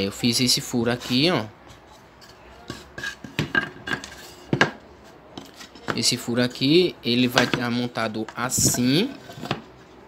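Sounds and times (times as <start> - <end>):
knocks and clicks of folding table: 3.2 - 4.8.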